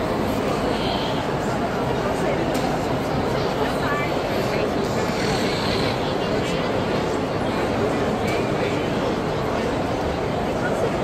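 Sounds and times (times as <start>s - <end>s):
loud low background noise: 0.0s - 11.0s.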